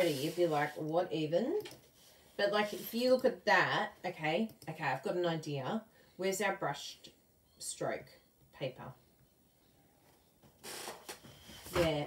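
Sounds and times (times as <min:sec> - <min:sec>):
paper sheet sliding on paper: 0:00.0 - 0:00.8, 0:02.4 - 0:03.2.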